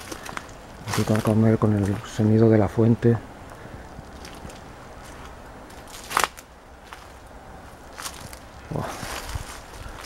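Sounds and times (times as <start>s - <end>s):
footsteps on dry leaves: 0.0s - 2.2s, 3.7s - 10.0s
small crackles: 0.0s - 2.2s, 3.5s - 7.3s.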